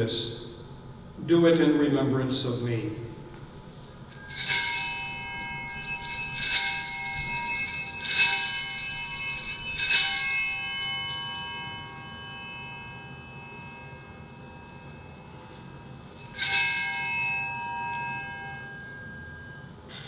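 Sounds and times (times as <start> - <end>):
hand bells ringing: 4.0 - 20.0.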